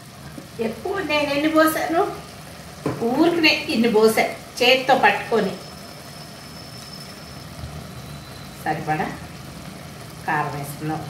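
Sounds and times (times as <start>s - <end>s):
cooktop humming: 0.0s - 11.0s
curry simmering: 0.0s - 11.0s.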